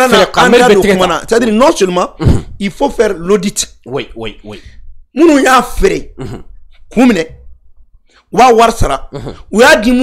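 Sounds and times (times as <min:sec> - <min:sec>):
wordless vocal sounds: 0:00.0 - 0:10.0.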